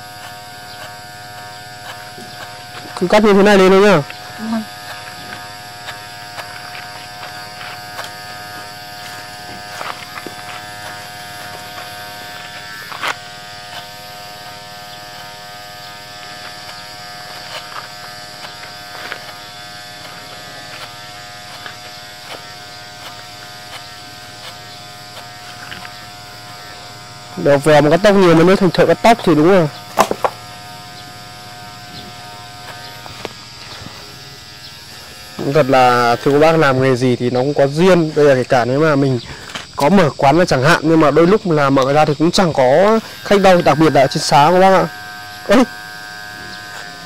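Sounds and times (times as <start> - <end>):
electric hair clippers buzzing: 0.0 - 47.0.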